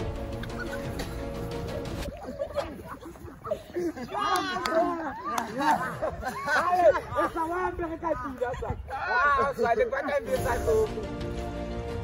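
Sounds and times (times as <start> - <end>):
background music: 0.0 - 2.2, 10.2 - 12.0
young voices shouting: 2.4 - 10.3.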